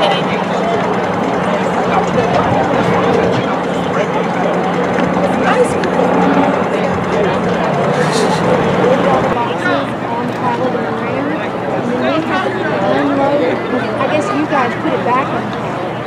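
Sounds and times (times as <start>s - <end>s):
steady low hum: 0.0s - 11.8s
crowd chatter: 0.0s - 16.0s.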